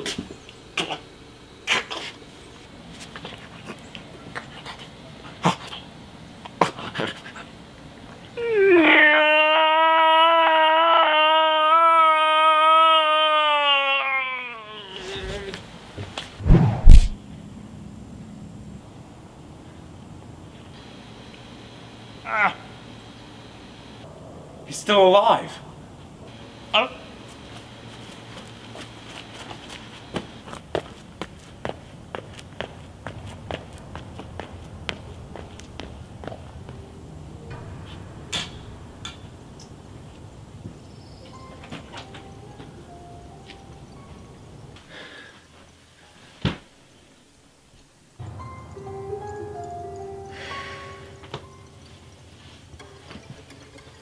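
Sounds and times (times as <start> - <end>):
low hiss: 14.5 - 54.0
running footsteps: 27.2 - 36.9.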